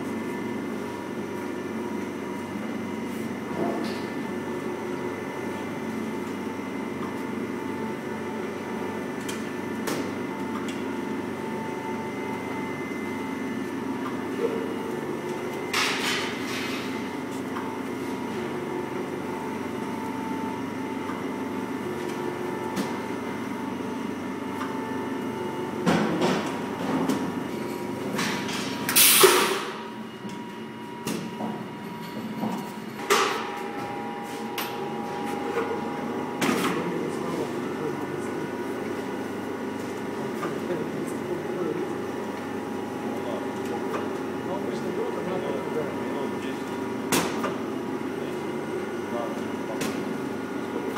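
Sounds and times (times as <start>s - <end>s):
vacuum pump hum: 0.0s - 28.2s, 32.9s - 50.9s.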